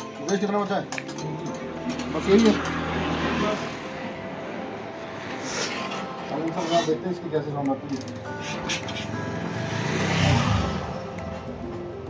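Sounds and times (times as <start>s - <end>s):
motor scooter passing: 1.3s - 7.2s, 8.2s - 12.0s.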